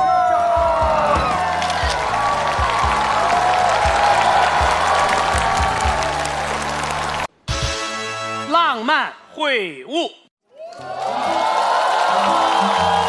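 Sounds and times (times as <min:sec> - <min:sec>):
studio audience applauding and cheering: 0:00.0 - 0:07.3, 0:10.5 - 0:13.0
background music with bass line: 0:00.6 - 0:08.2.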